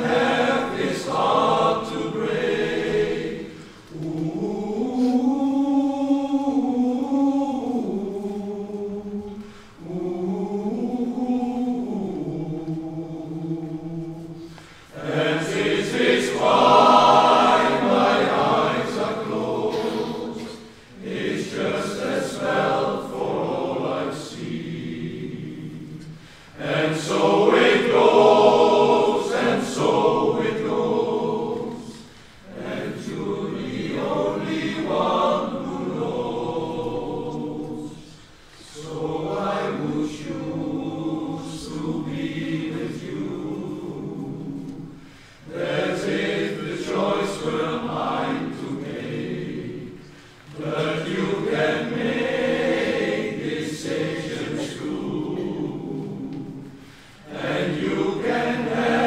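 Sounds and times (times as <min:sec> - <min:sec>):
men's choir singing: 0:00.0 - 0:59.0.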